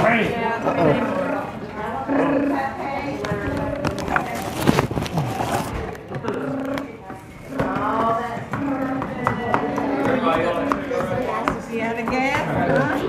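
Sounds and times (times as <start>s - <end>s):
people talking: 0.0s - 13.0s.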